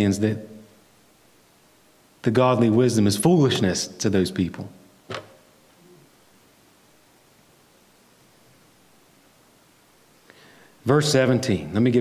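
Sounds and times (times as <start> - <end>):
man speaking: 10.8 - 12.0.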